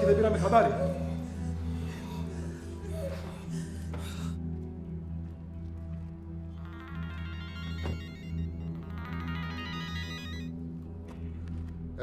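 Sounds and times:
background music: 0.0s - 12.0s
phone ringtone melody: 7.4s - 8.7s, 9.4s - 10.5s.

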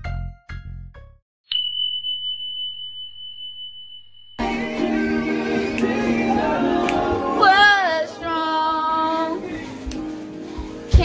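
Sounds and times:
song: 4.4s - 10.9s
loud music with singing: 4.4s - 11.0s.

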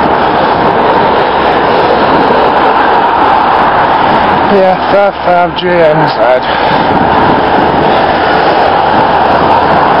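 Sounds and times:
motor traffic passing: 0.0s - 10.0s
wind buffeting microphone: 0.0s - 10.0s.

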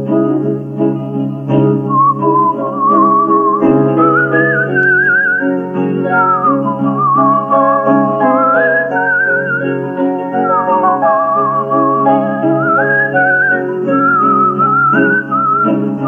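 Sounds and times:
instrumental accompaniment: 0.0s - 16.0s
whistled melody with vibrato: 0.1s - 16.0s.

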